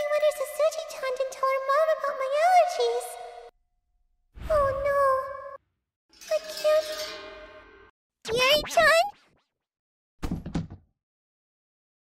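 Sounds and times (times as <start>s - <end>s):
body collapsing thud: 10.2s - 10.8s.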